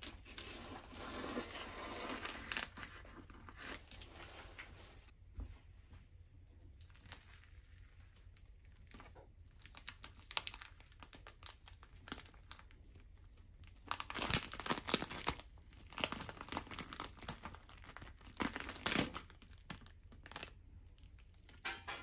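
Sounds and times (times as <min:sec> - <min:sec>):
plastic crinkling and rustling: 0:06.6 - 0:21.6.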